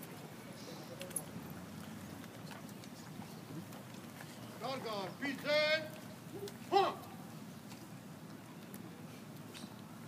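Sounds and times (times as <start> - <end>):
low outdoor murmur: 0.0 - 10.0.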